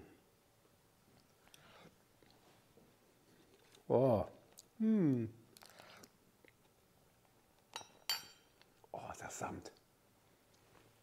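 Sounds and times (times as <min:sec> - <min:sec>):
metal spoon clinking ceramic pot: 0:07.7 - 0:08.6.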